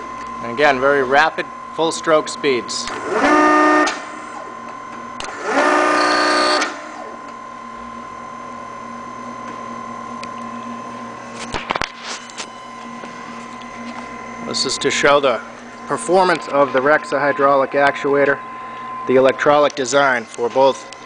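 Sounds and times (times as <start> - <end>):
motor and hydraulic pump whining: 0.0 - 21.0
steady hum: 0.0 - 21.0.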